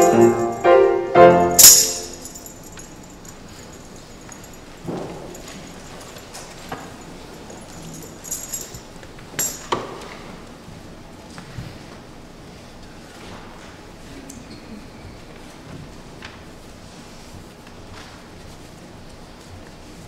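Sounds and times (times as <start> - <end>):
metallic jingle and crash: 0.0 - 9.8.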